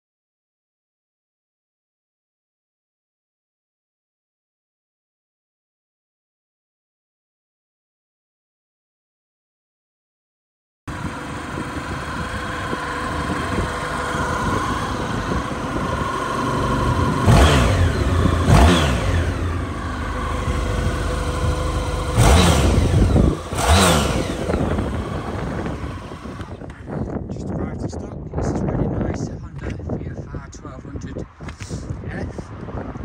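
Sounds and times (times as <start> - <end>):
motorcycle engine idling and revving: 10.9 - 33.0.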